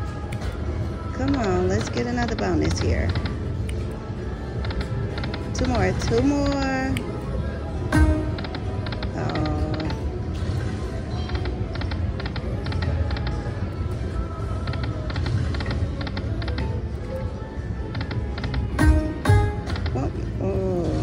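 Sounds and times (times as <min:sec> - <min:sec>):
electronic game music: 0:07.9 - 0:09.7, 0:18.7 - 0:20.0.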